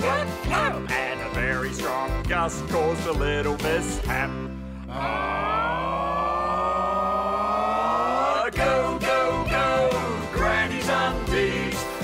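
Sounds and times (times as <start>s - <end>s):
backing music: 0.0s - 5.3s, 7.4s - 12.0s.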